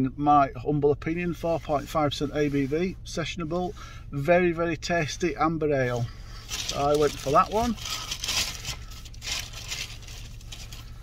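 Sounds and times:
steady low hum: 0.0 - 11.0
shopping bag rustling and crinkling: 6.4 - 11.0.

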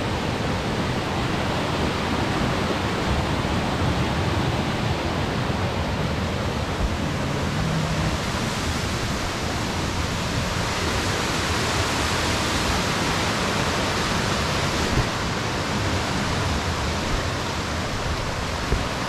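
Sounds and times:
creek water rushing over rocks: 0.0 - 19.0.

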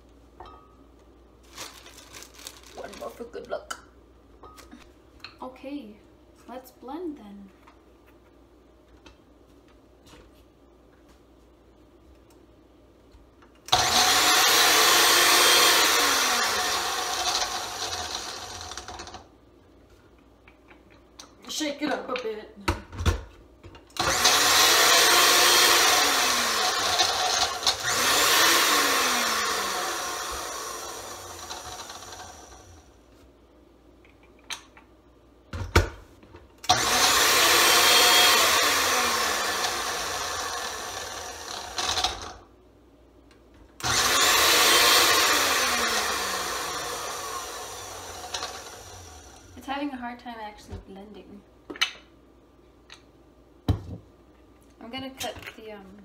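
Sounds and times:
blender chopping: 13.7 - 19.1, 24.0 - 32.8, 36.7 - 42.4, 43.8 - 49.5
knocks and thump: 53.7 - 54.1.

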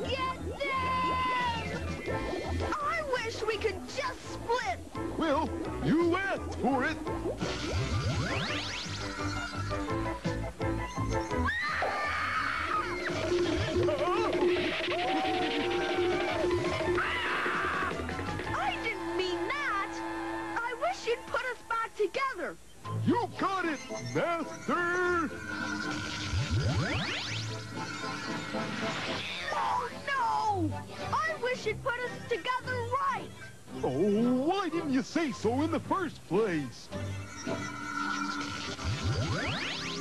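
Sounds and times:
cartoon score music: 0.0 - 40.0
whistling tones sweeping upward: 7.4 - 9.9, 14.4 - 17.6, 23.7 - 29.3, 37.1 - 40.0
magic spell rising sweeps: 25.2 - 29.3, 37.3 - 40.0.

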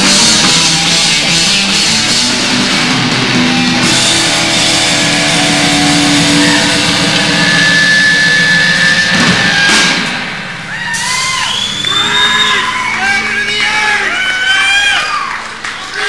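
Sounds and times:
rock band playing live: 0.0 - 15.8
crowd whooping and cheering: 3.4 - 16.0.

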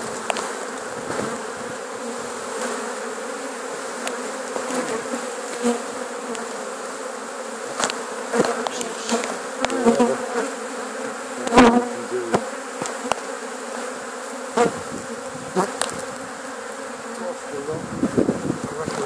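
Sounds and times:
swarm of bees buzzing: 0.0 - 19.0.

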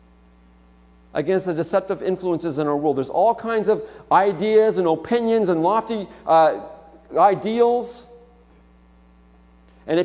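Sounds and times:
faint mains hum: 0.0 - 10.0
man speaking: 1.2 - 8.2.

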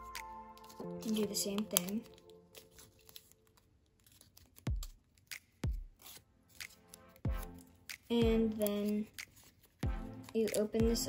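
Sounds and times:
paper crinkling and crackling: 0.0 - 10.8.

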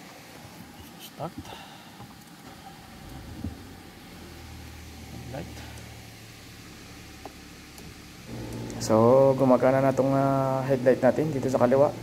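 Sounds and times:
car engine starting and idling: 2.4 - 12.0.

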